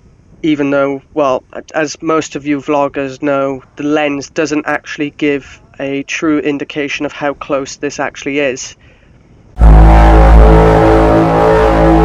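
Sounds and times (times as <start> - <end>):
loud steady drone: 9.5 - 12.0.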